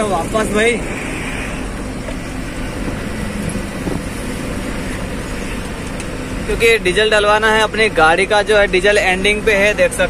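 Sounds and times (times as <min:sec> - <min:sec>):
truck engine and road hum: 0:00.0 - 0:10.0.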